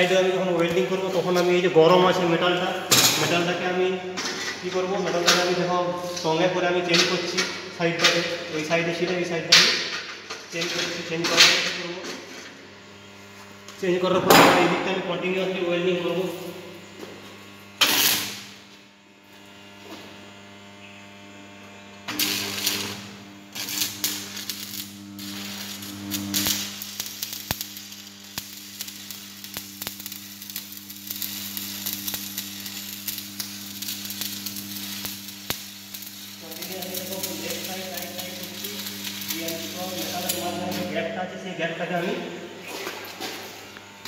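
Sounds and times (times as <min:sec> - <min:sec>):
welding arc crackling and sizzling: 0:00.0 - 0:44.0
welding transformer hum: 0:00.0 - 0:44.0.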